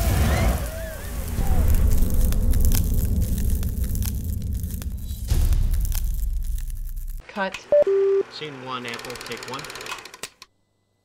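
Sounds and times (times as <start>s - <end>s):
deep rumble with crackles: 0.0s - 7.2s.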